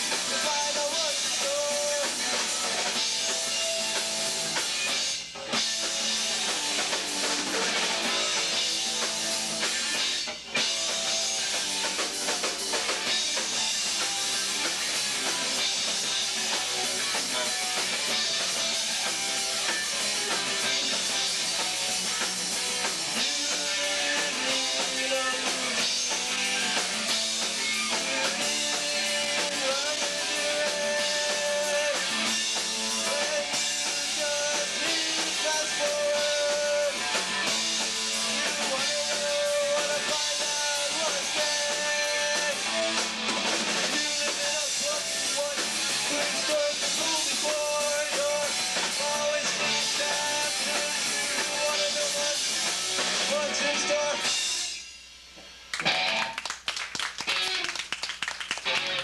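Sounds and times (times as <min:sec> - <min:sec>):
live punk rock band: 0:00.0 - 0:59.0
person singing: 0:00.2 - 0:02.2, 0:23.2 - 0:25.9, 0:28.4 - 0:32.2, 0:33.0 - 0:37.2, 0:38.3 - 0:42.9, 0:43.9 - 0:52.6, 0:53.2 - 0:54.3
scattered clapping: 0:55.7 - 0:59.0.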